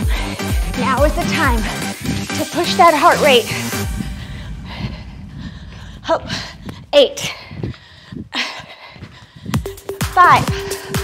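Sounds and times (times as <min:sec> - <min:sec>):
woman breathing hard: 0:00.0 - 0:00.8, 0:03.4 - 0:11.0.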